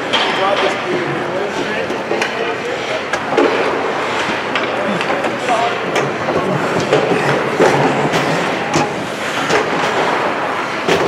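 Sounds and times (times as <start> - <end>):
echoing indistinct voices: 4.4 - 9.2.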